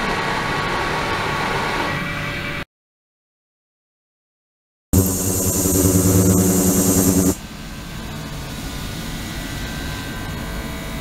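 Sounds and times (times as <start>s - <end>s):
ultrasonic cleaner humming: 5.0s - 7.4s.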